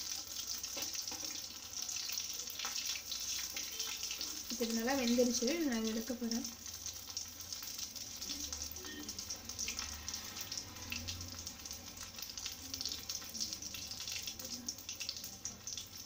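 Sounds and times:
deep-frying sizzle with crackling: 0.0s - 16.0s.

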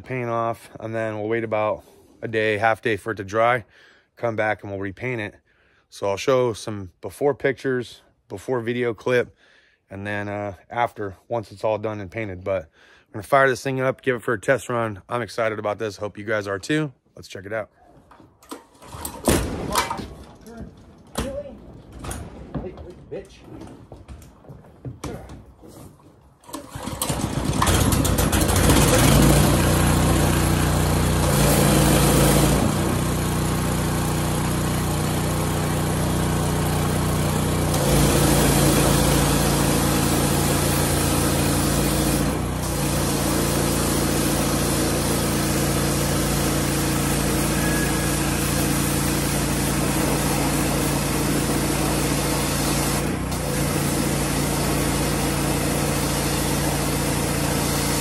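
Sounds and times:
pressure washer engine running: 26.4s - 58.0s
water jet hissing on wood: 46.7s - 53.0s.

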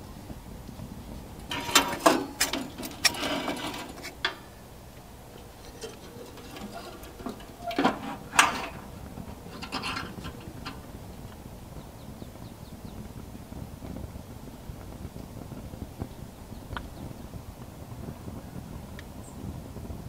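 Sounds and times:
wood stove fire crackling: 0.0s - 20.0s.

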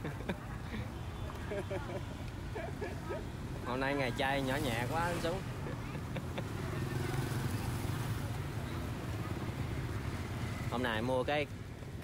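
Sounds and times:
motorbike traffic: 0.0s - 12.0s.

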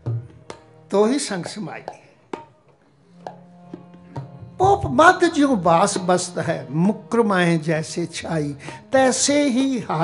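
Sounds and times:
tabla strokes: 0.0s - 5.2s.

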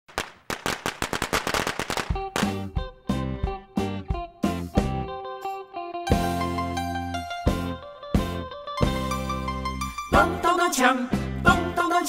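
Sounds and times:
firecrackers cracking: 0.0s - 2.7s.

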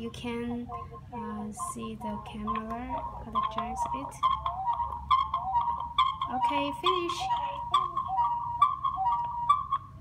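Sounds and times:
electronic feedback whistling: 0.0s - 10.0s.

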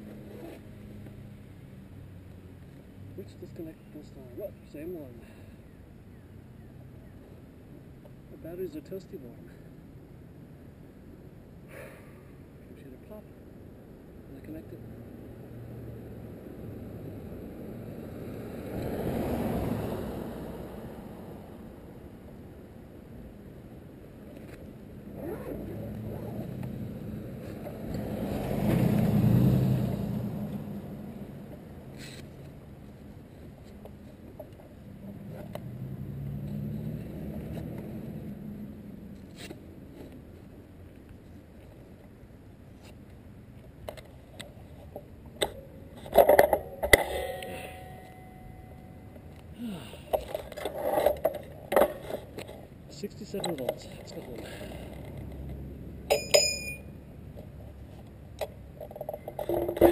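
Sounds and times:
cars passing on street: 0.0s - 59.9s
bike clicks and knocks: 43.8s - 52.7s, 56.1s - 56.8s, 58.3s - 59.9s.

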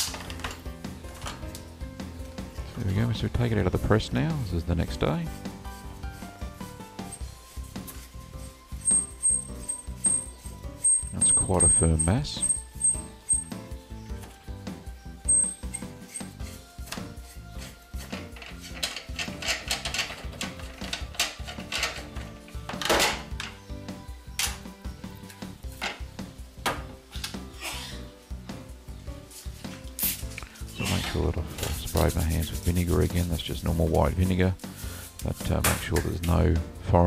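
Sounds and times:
soft background music: 0.0s - 37.0s
spray bottle squirt: 30.0s - 30.3s.

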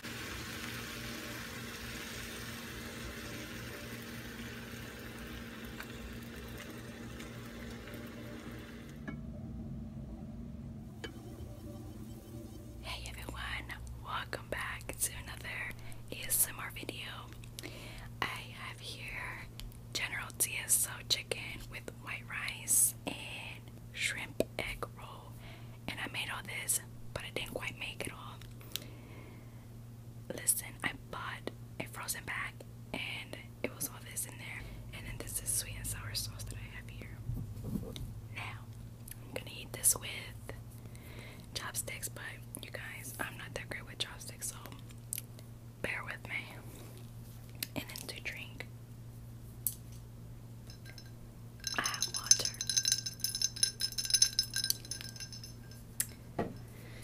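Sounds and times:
steady low hum: 0.0s - 57.0s
woman whispering: 12.8s - 17.4s, 18.2s - 28.4s, 30.3s - 37.2s, 38.3s - 40.6s, 41.6s - 44.8s, 45.8s - 46.7s, 47.7s - 48.7s.

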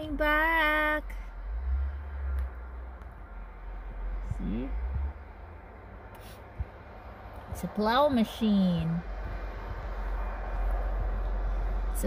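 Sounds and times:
engine rumble inside car: 0.0s - 12.0s.

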